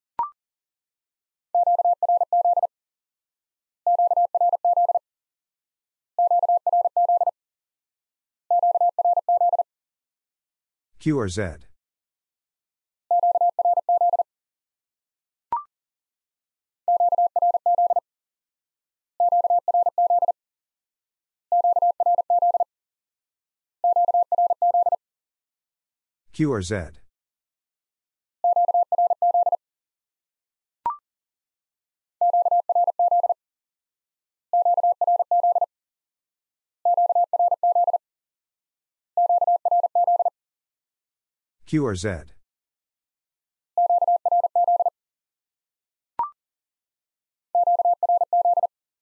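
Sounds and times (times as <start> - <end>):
morse code beeps: 1.6 - 2.7, 3.9 - 5.0, 6.2 - 7.3, 8.5 - 9.6, 13.2 - 14.2, 16.9 - 18.0, 19.3 - 20.3, 21.6 - 22.7, 23.9 - 25.0, 32.2 - 33.4, 34.6 - 35.7, 36.9 - 38.0, 39.2 - 40.3, 43.8 - 44.9, 47.6 - 48.7.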